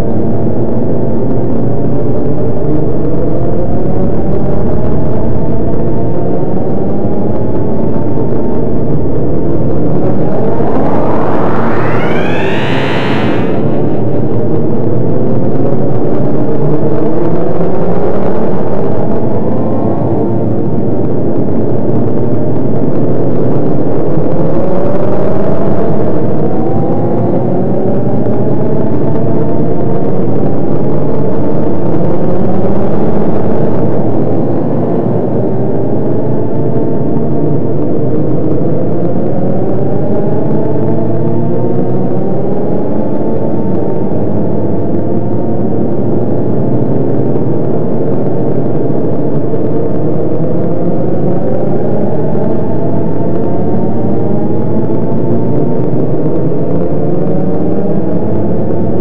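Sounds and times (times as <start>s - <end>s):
dense electronic drone: 7.3s - 16.4s
high tones sweeping upward: 9.0s - 14.8s.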